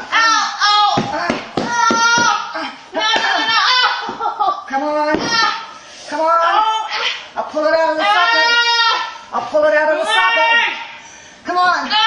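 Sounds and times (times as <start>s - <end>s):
woman wailing: 0.1s - 5.6s, 7.7s - 9.2s, 9.9s - 10.9s.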